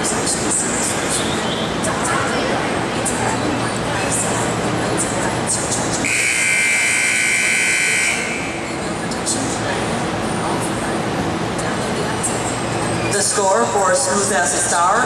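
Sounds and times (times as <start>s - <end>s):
timer buzzer: 6.0s - 8.5s.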